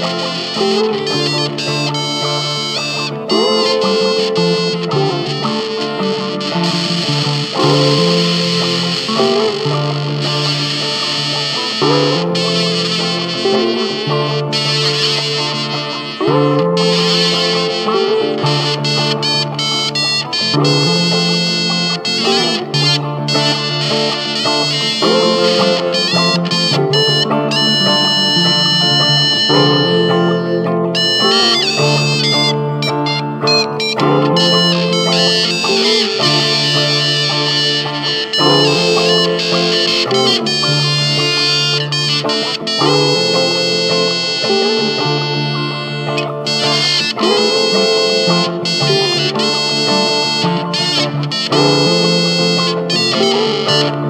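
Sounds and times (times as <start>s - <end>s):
guitar played through effects: 0.0s - 54.0s.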